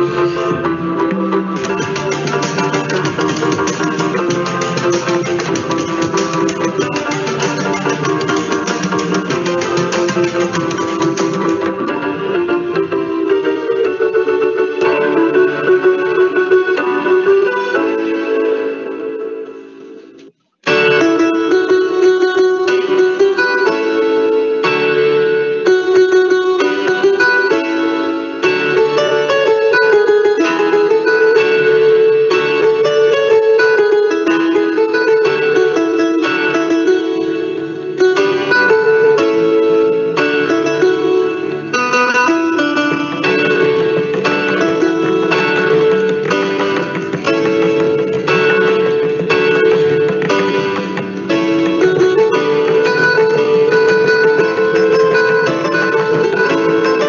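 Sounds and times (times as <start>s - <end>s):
instrumental band with guitars and tabla: 0.0s - 19.1s, 20.6s - 57.0s.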